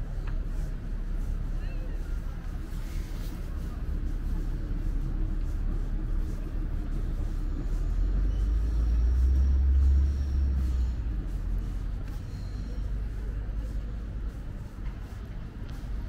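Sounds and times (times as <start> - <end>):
bus engines rumbling: 0.0 - 16.0.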